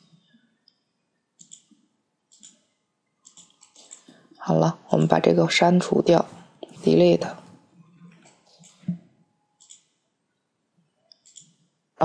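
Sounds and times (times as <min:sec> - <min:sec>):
faint computer mouse clicks: 0:01.4 - 0:01.7.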